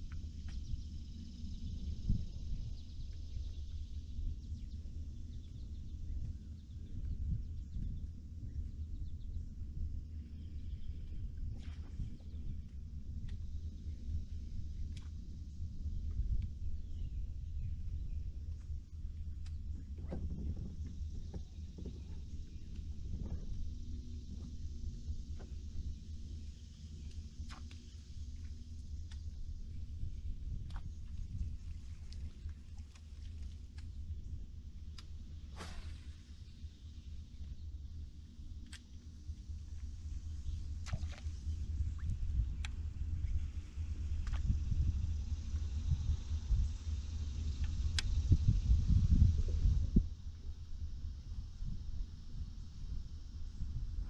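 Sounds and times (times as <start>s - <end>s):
wind buffeting microphone: 0.0s - 27.6s, 28.5s - 37.7s, 39.3s - 54.0s.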